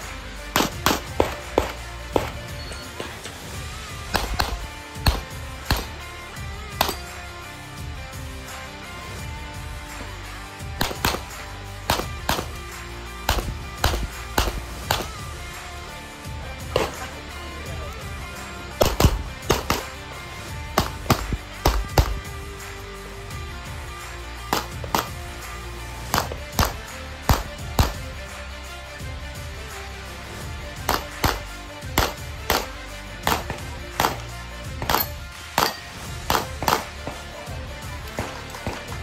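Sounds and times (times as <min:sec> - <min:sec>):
background music: 0:00.0 - 0:39.0
pistol shots: 0:00.5 - 0:02.6, 0:04.0 - 0:06.0, 0:06.7 - 0:07.2, 0:10.8 - 0:15.3, 0:16.7 - 0:17.2, 0:18.8 - 0:20.0, 0:20.8 - 0:22.4, 0:24.5 - 0:25.2, 0:26.1 - 0:28.0, 0:30.8 - 0:37.2.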